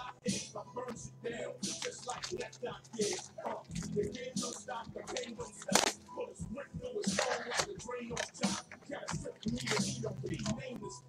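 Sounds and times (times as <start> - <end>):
faint background music: 0.0 - 11.0
plastic wrap and cardboard crackling: 1.6 - 6.3, 7.0 - 10.8.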